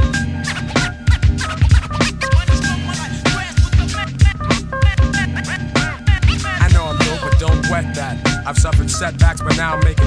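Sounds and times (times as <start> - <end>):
hip-hop beat: 0.0 - 10.0
turntable scratching: 0.0 - 10.0.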